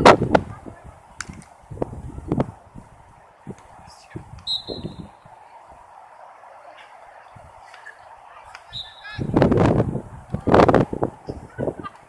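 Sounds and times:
spectators shouting: 4.1 - 9.4
faint high calls: 6.2 - 9.3.

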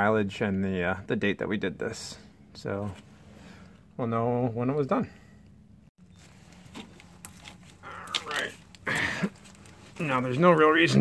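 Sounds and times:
gloved hand handling cartridge: 6.1 - 10.4.

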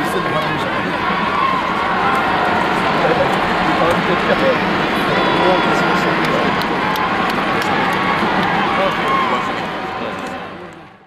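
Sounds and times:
group shouting and whooping: 0.9 - 10.6.

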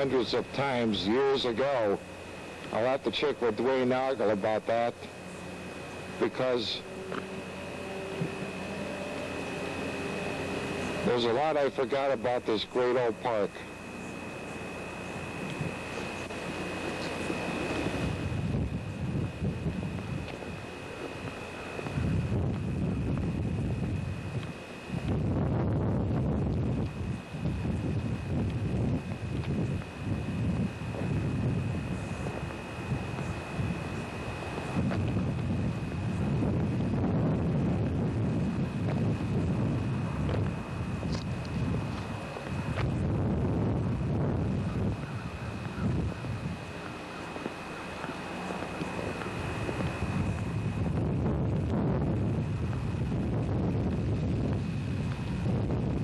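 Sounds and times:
thin steady high whine: 0.0 - 56.0
wind buffeting microphone: 13.7 - 56.0.

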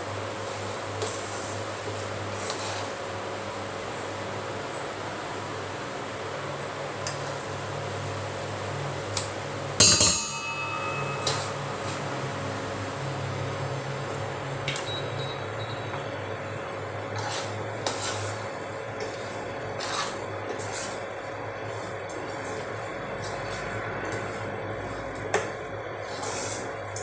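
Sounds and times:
metal spoon scraping frying pan: 1.0 - 3.0, 10.0 - 12.1, 17.1 - 27.0
spoon clinking on pan: 9.8 - 11.6.

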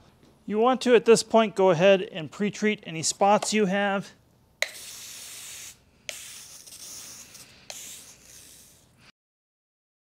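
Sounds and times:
sprayer hissing: 4.6 - 8.8.

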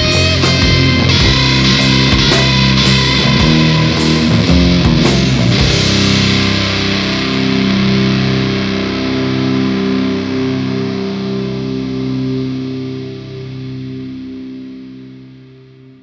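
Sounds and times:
distorted electric guitar chord: 0.0 - 16.0.

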